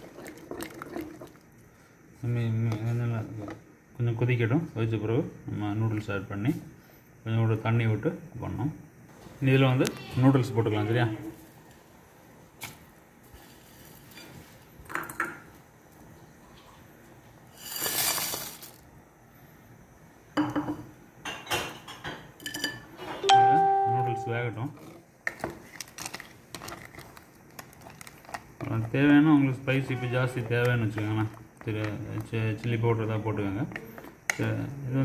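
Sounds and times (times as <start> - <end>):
utensils clinking on pot: 21.3 - 23.5.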